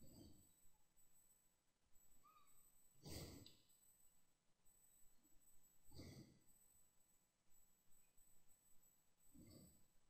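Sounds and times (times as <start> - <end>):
faint breath: 0.0 - 0.6, 3.0 - 3.7, 5.8 - 6.6, 9.3 - 9.9.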